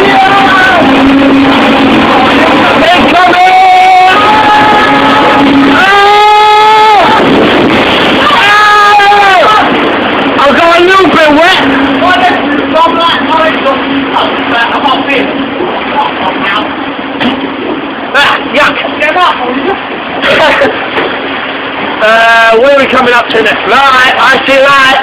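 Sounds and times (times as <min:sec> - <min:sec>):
long held note: 0:00.0 - 0:07.4
low hum: 0:00.0 - 0:22.4
rush of water: 0:00.0 - 0:25.0.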